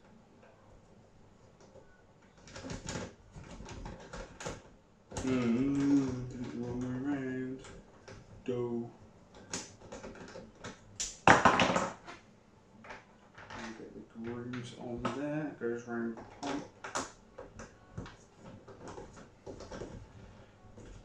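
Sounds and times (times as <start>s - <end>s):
plastic parts clicking and knocking: 1.6s - 8.5s, 9.3s - 12.2s, 12.8s - 15.3s, 16.0s - 21.0s.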